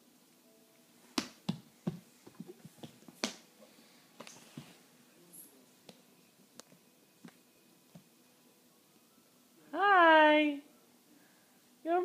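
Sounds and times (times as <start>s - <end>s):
palms slapping hardwood floor: 1.1s - 3.5s.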